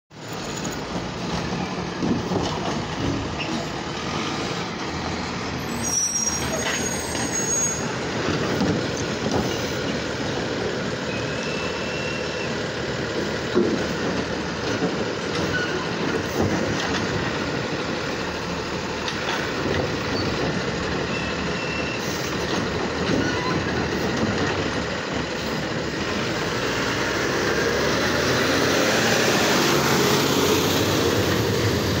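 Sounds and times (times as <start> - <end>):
garbage truck diesel engine: 0.1 - 32.0
truck pulling away: 0.2 - 32.0
side-loader arm lowering cart: 5.6 - 10.0.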